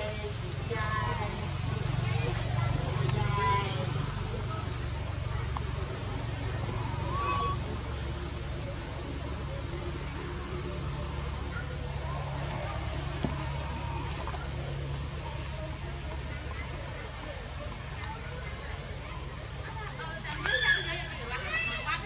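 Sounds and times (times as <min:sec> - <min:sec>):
continuous low rumble: 0:00.0 - 0:22.0
faint distant voices: 0:00.0 - 0:22.0.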